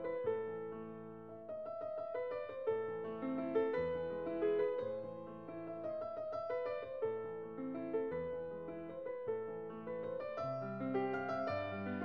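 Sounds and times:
gentle piano music: 0:00.0 - 0:12.0.

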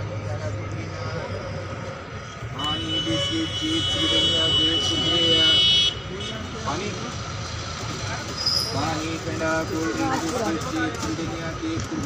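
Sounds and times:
train brakes squealing: 0:08.4 - 0:08.8.

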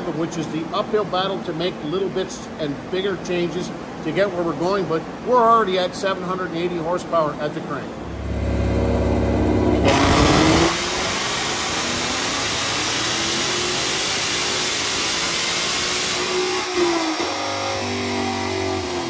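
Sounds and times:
car engine revving at full throttle: 0:08.0 - 0:19.0.

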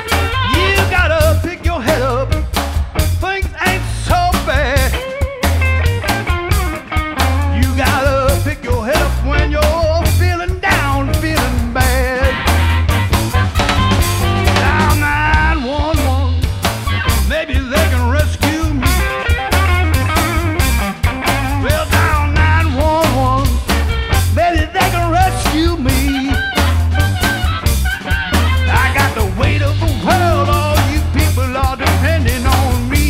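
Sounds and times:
drum kit beat: 0:00.0 - 0:33.0
electric guitar: 0:00.0 - 0:33.0
man singing: 0:00.1 - 0:05.2, 0:07.4 - 0:12.7, 0:14.3 - 0:16.5, 0:17.2 - 0:26.8, 0:28.6 - 0:33.0.

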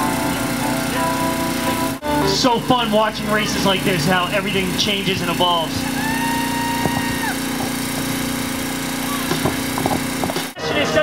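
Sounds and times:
low motor hum: 0:00.0 - 0:10.6.

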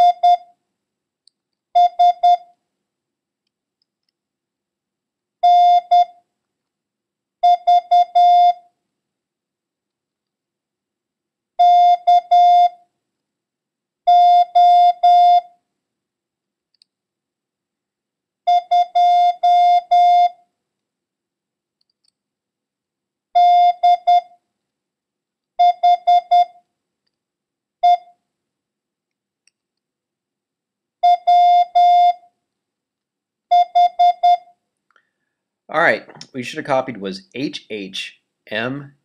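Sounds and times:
morse code beeps: 0:01.8 - 0:02.4, 0:23.4 - 0:24.3, 0:25.6 - 0:26.6, 0:33.5 - 0:34.5.

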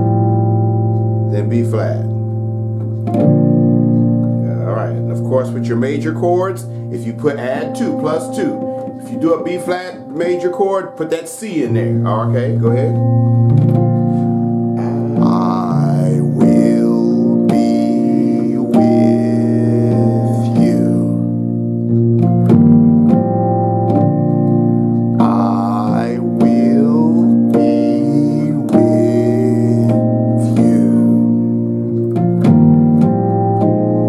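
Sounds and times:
gospel piano chords: 0:00.0 - 0:34.0.

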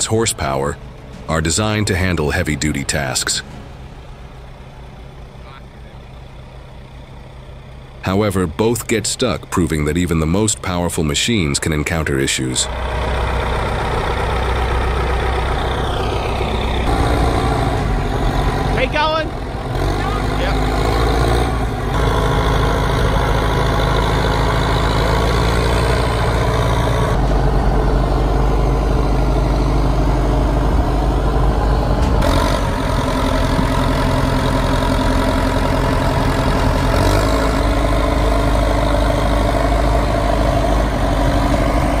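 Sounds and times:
diesel engine droning: 0:00.0 - 0:42.0.

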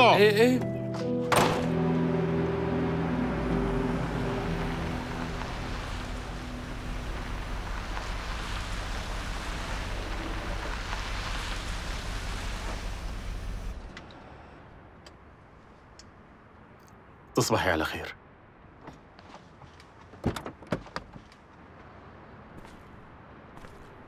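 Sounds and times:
background music: 0:00.0 - 0:07.8
car engine and tyre noise: 0:00.0 - 0:17.4, 0:18.2 - 0:24.0.

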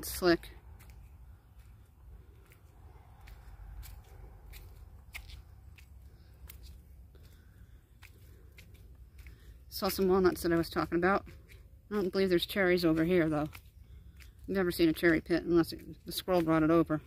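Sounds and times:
footsteps on gritty concrete steps: 0:00.0 - 0:17.0
low steady rumble: 0:00.0 - 0:17.0.

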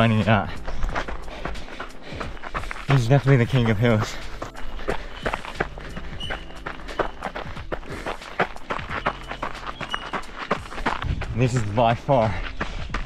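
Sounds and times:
background music: 0:00.0 - 0:13.0
footsteps running on dirt trail: 0:00.0 - 0:13.0.

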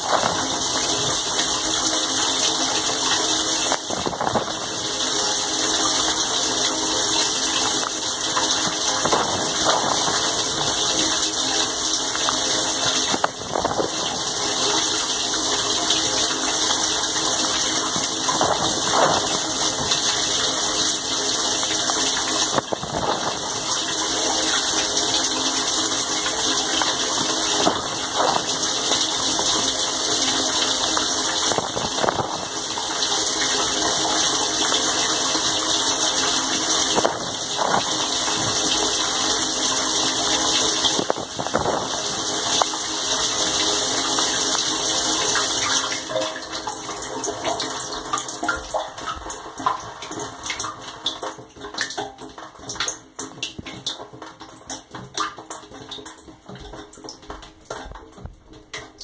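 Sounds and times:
water spraying on steel walls: 0:00.0 - 0:49.4
dishwasher pump running: 0:00.0 - 0:51.8
water dripping and trickling: 0:00.0 - 0:59.0.

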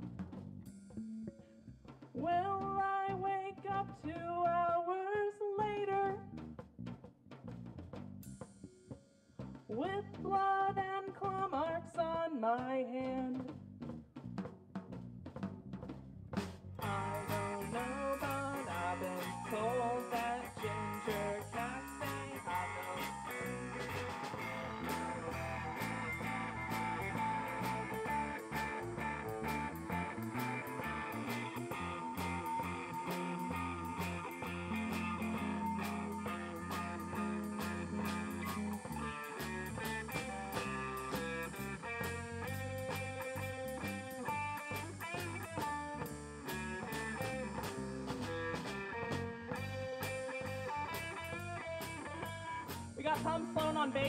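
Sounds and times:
drum kit: 0:00.0 - 0:01.1, 0:05.9 - 0:11.6, 0:13.1 - 0:54.0
electric bass: 0:00.0 - 0:04.8, 0:05.6 - 0:12.2, 0:13.2 - 0:54.0
electric guitar: 0:16.8 - 0:54.0.

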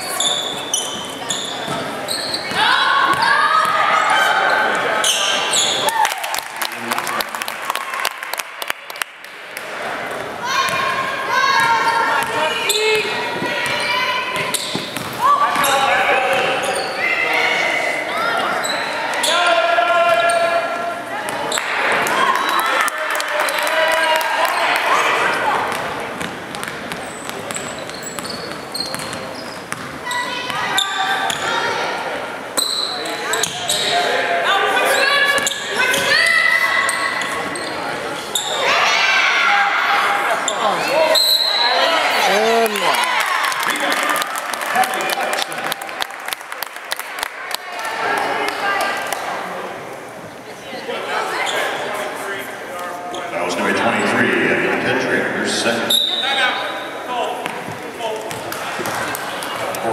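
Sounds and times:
basketball bouncing on court: 0:13.6 - 0:15.7, 0:25.7 - 0:30.6, 0:57.4 - 0:59.6.

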